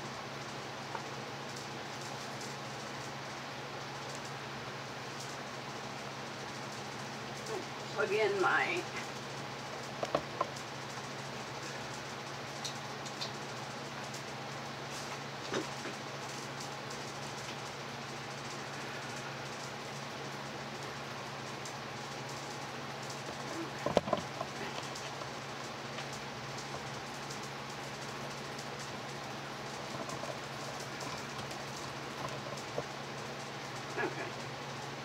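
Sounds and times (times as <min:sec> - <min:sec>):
fans and air conditioner whooshing: 0:00.0 - 0:35.0.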